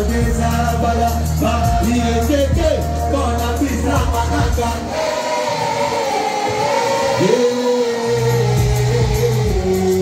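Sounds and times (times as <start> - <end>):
live pop music through speakers: 0.0 - 10.0.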